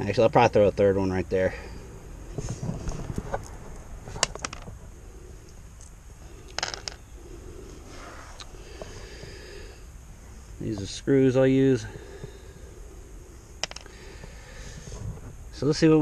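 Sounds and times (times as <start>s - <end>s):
handling noises: 2.3s - 4.9s, 5.8s - 7.0s, 13.6s - 15.4s.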